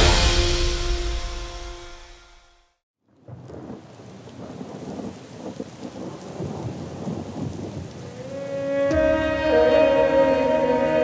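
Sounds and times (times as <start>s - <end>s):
rain and thunder rumble: 3.1s - 11.0s
held musical note: 8.4s - 11.0s.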